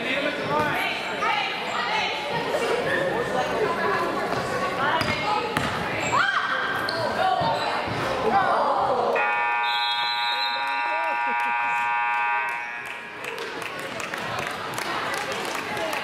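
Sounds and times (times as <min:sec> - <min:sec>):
crowd voices: 0:00.0 - 0:16.0
sneaker squeaks: 0:04.4 - 0:08.2
scoreboard buzzer: 0:09.2 - 0:12.9.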